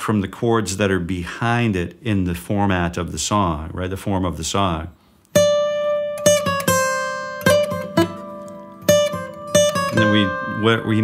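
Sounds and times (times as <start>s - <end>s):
acoustic guitar chords: 5.3s - 11.0s.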